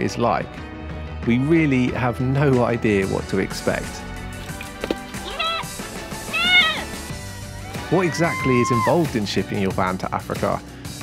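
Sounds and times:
background music: 0.0 - 11.0
goat bleating: 5.2 - 7.0.

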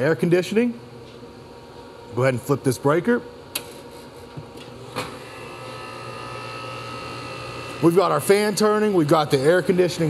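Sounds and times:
air conditioner unit humming: 0.0 - 10.0.

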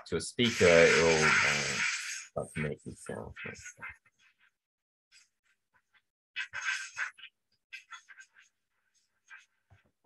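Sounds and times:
faint irregular electric bursts: 0.4 - 2.4.

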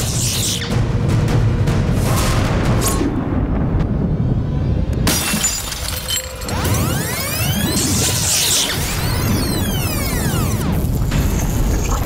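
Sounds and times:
background music: 0.0 - 12.0
mirror glass shattering: 5.1 - 6.6.

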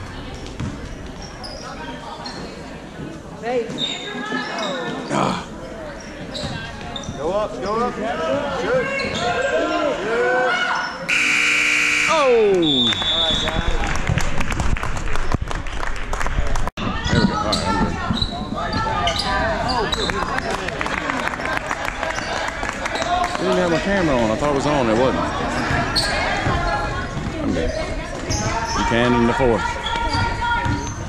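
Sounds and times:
scoreboard horn: 11.1 - 12.6
clapping and cheering: 12.1 - 16.7, 20.0 - 23.8.

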